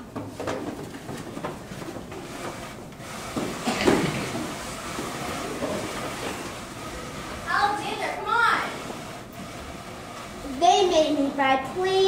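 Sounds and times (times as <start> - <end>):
knocks and scrapes of props: 0.0 - 6.6
footsteps: 0.0 - 6.7.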